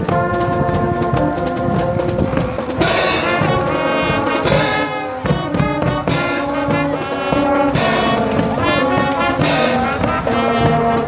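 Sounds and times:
bass drum and snare beats: 0.0 - 11.0
brass chords: 0.0 - 11.0.

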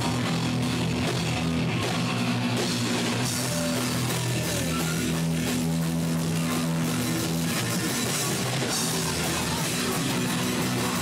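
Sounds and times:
distorted electric guitar chords: 0.0 - 11.0
steady drumming: 0.0 - 11.0.

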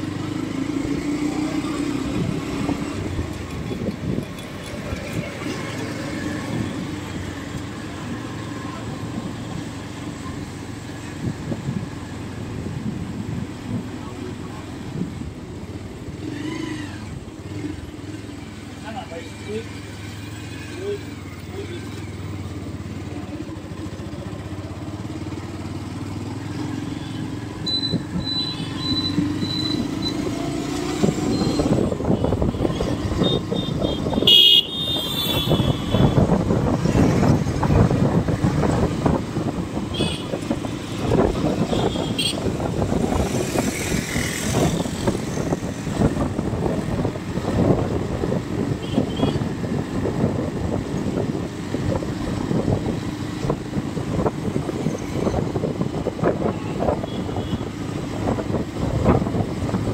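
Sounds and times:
passing auto-rickshaws: 0.0 - 59.9
road rumble: 0.0 - 59.9
vehicle engine hum: 0.0 - 59.9.

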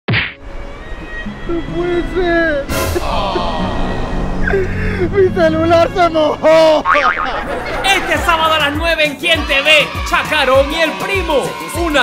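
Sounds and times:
sharp whack sound effect: 0.1 - 0.4.

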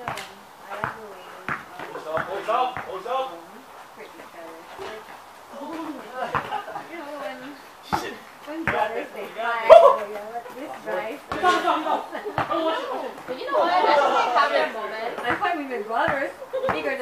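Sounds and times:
basketball bouncing on court: 0.0 - 3.0, 6.3 - 6.6, 8.6 - 9.0, 12.3 - 13.4, 15.2 - 17.0
people talking: 0.0 - 17.0.

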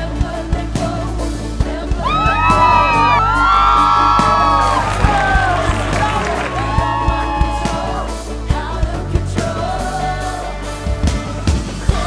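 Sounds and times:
background music with steady beat: 0.0 - 12.0
young people whooping and cheering: 2.0 - 8.4.

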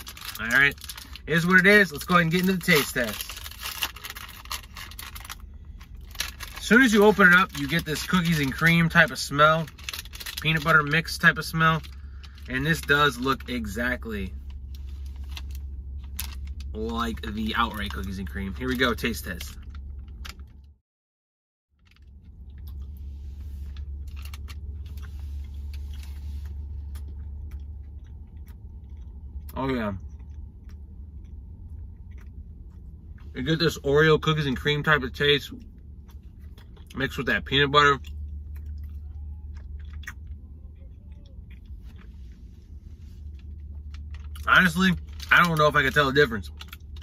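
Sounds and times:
low rumble inside car cabin: 0.0 - 20.8, 21.8 - 47.0
steady low hum: 0.0 - 20.8, 21.7 - 47.0
person chewing: 21.9 - 33.3, 35.6 - 37.0, 38.0 - 45.2.

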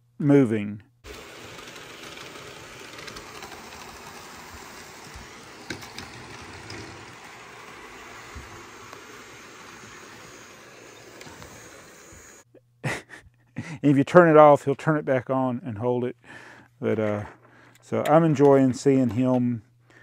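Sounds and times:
toy trains rumbling: 1.1 - 12.4.

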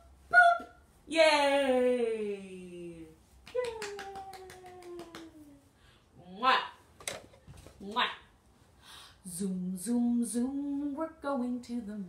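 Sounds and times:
quick light hand claps: 3.4 - 5.4.

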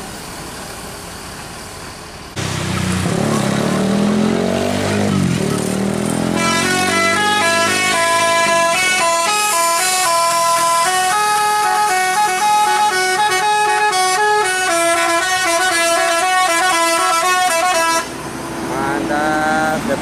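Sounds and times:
multi-tone bus air horn melody: 6.3 - 18.3
voices: 18.7 - 20.0.

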